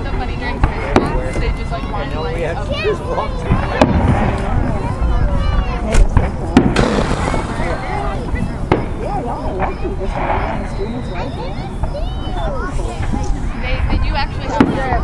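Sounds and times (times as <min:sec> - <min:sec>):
crowd chatter: 0:00.0 - 0:15.0
distant fireworks bangs: 0:06.0 - 0:10.9.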